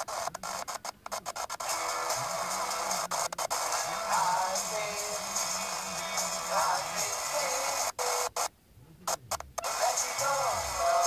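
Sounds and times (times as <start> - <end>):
faint tv programme sound: 0.0 - 11.0
loud hiss: 1.6 - 8.0, 9.6 - 11.0.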